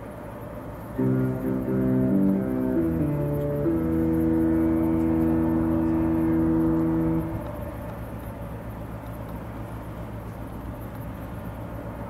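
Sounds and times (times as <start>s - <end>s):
low steady rumble: 0.0s - 12.0s
ship horn chord: 0.9s - 8.3s.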